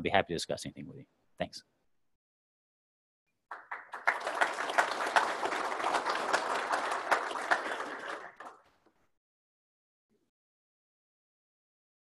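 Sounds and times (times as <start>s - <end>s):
audience applauding: 3.5s - 8.8s.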